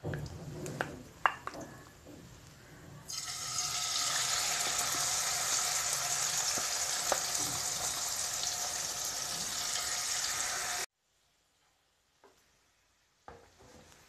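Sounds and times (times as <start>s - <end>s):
chicken sizzling in hot oil: 3.1s - 10.9s.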